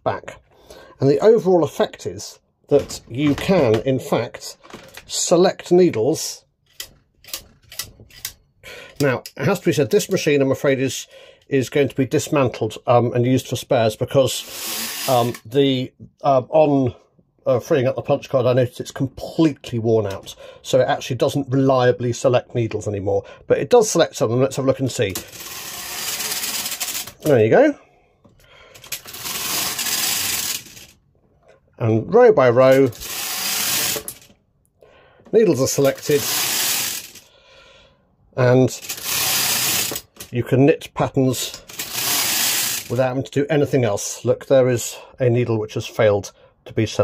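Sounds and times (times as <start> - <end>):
knitting machine needles clicking: 25.1 - 27.4, 28.8 - 31.0, 32.8 - 34.3, 35.7 - 37.2, 38.8 - 40.4, 41.6 - 43.0.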